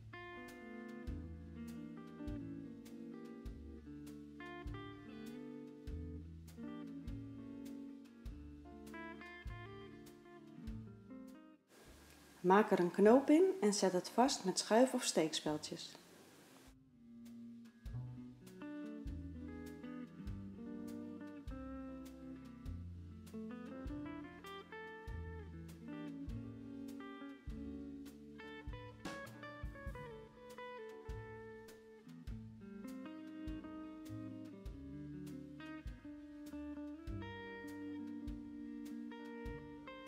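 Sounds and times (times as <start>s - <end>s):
plucked guitar music: 0.0s - 12.3s, 16.8s - 40.0s
low bass line: 21.5s - 24.2s, 28.6s - 30.3s.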